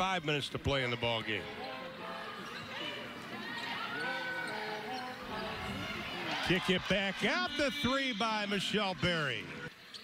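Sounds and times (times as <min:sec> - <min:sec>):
crowd and player voices: 0:00.0 - 0:10.0.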